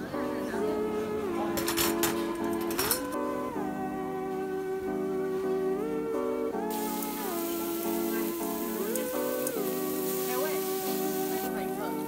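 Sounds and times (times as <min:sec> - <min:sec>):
background music with sliding notes: 0:00.0 - 0:12.0
meat sizzling on a hot grill: 0:06.6 - 0:12.0.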